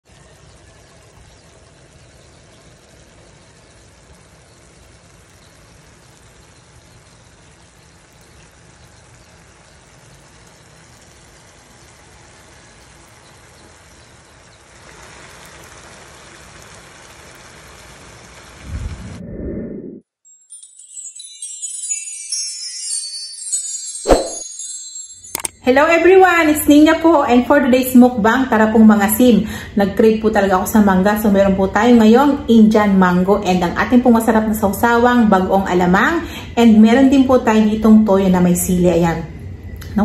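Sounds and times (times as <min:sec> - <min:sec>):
sauce bubbling and sizzling: 0:00.0 - 0:18.8
loud low rumble: 0:18.6 - 0:20.0.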